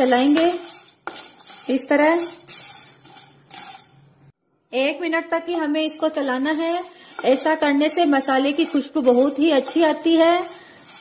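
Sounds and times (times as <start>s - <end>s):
wooden spatula stirring spices in pan: 0.0s - 4.1s, 5.6s - 11.0s.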